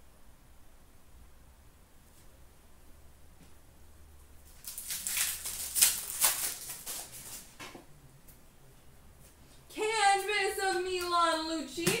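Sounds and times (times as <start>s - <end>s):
foil wrapper crinkling: 4.5s - 7.5s
trading cards rustling: 4.5s - 7.5s.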